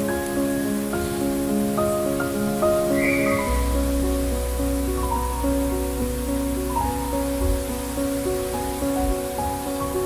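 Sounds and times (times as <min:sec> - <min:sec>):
calm background music: 0:00.0 - 0:10.0
soft steady hiss: 0:00.0 - 0:10.0
deep low tone: 0:02.9 - 0:09.3.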